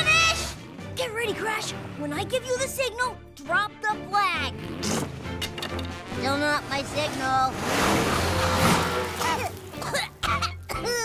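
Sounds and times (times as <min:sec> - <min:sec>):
rushing noise: 0:06.8 - 0:09.3.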